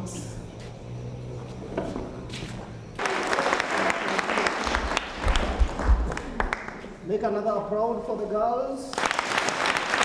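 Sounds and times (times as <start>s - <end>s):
audience applauding: 3.0s - 6.9s, 8.9s - 10.0s.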